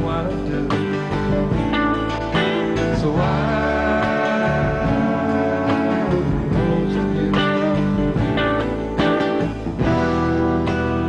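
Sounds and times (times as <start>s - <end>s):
instrumental band music with guitar: 0.0s - 11.0s.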